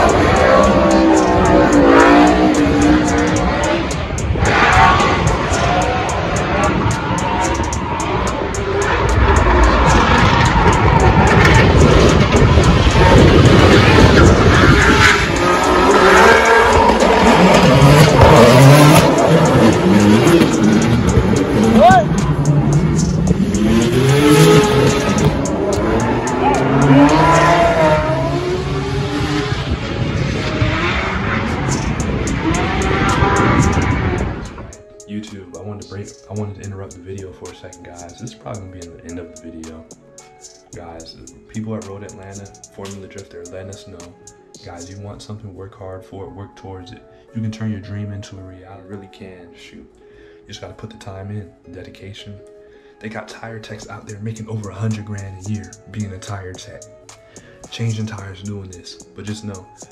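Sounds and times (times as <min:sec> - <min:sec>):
car engines revving hard: 0:00.0 - 0:34.8
tires squealing: 0:00.0 - 0:34.8.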